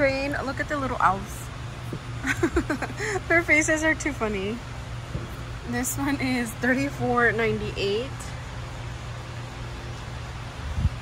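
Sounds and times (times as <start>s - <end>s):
low background hum and hiss: 0.0s - 11.0s.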